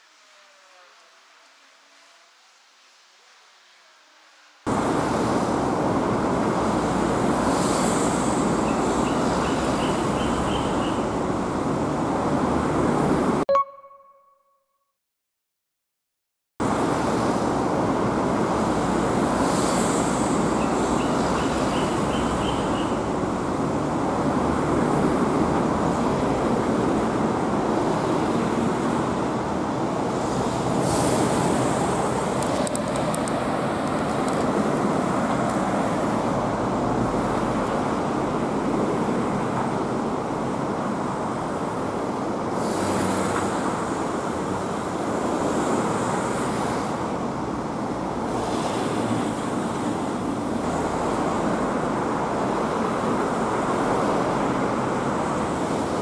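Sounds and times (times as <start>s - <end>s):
cars passing on road: 4.6s - 13.5s, 16.6s - 56.0s
faint high chirps: 13.5s - 14.5s.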